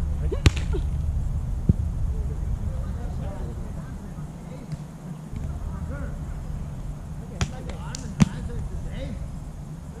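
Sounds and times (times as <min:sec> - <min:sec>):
low rumble: 0:00.0 - 0:04.2, 0:05.3 - 0:10.0
ball thumping: 0:00.4 - 0:00.9, 0:07.4 - 0:08.4.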